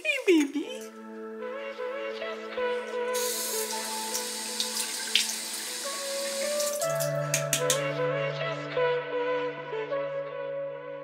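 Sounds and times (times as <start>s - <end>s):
tap water pouring into basin: 3.3s - 7.1s.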